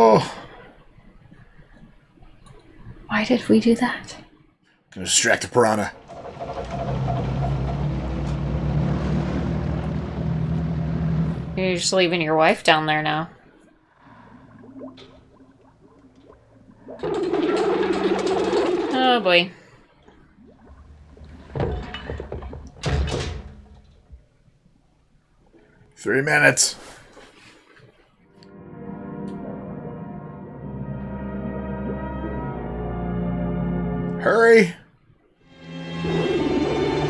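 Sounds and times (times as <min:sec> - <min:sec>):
heavy thuds: 0:06.0 - 0:11.6
low rumble: 0:06.0 - 0:12.2
motorboat engine humming: 0:06.0 - 0:12.2, 0:28.4 - 0:34.2, 0:35.5 - 0:37.0.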